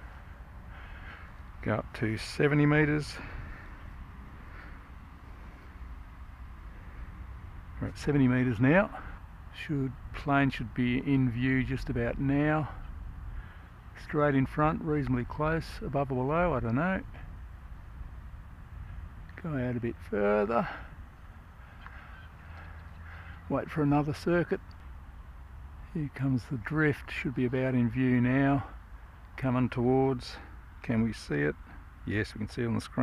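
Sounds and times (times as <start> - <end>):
low outdoor rumble: 0.0 - 33.0.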